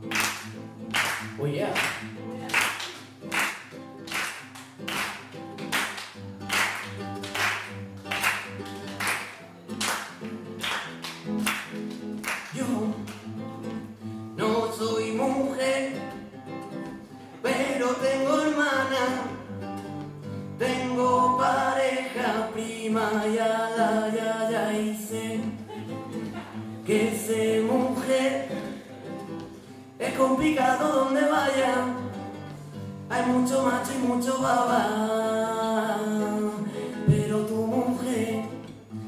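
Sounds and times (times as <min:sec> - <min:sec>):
classical guitar strumming chords: 0:00.0 - 0:39.0
man singing: 0:12.4 - 0:13.2, 0:14.4 - 0:16.2, 0:17.4 - 0:19.6, 0:20.5 - 0:29.0, 0:30.0 - 0:38.8.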